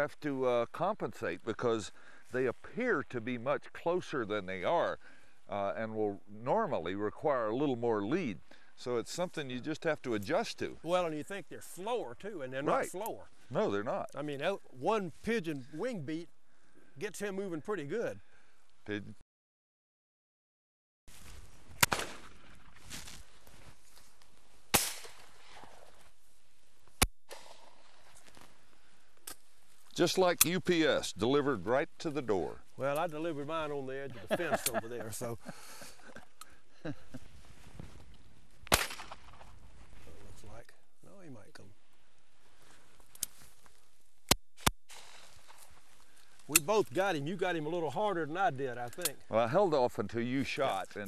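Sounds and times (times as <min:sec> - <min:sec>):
shotgun shots: 0:21.8 - 0:22.4, 0:24.7 - 0:25.7, 0:38.7 - 0:39.4.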